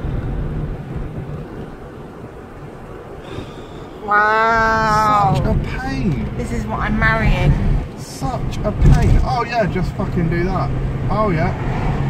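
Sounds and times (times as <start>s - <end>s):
car road and engine rumble: 0.0s - 12.0s.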